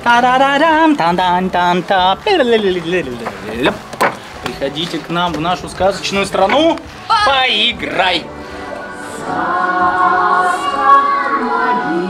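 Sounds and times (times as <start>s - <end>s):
voices singing held chord: 7.0s - 12.0s.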